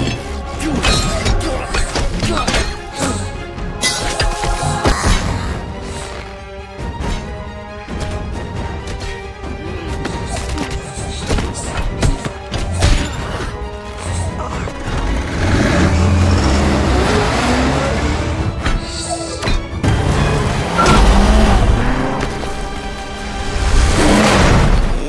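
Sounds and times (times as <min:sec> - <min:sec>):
action film music: 0:00.0 - 0:25.0
armoured vehicle engine revving: 0:14.8 - 0:19.0, 0:19.6 - 0:25.0.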